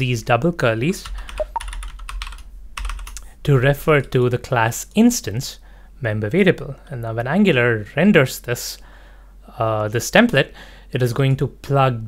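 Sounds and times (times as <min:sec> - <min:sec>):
computer keyboard typing: 0:01.0 - 0:03.2.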